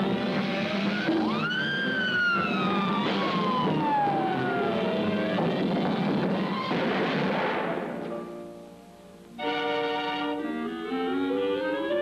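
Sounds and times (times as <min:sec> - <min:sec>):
cartoon soundtrack music: 0:00.0 - 0:08.5, 0:09.4 - 0:12.0.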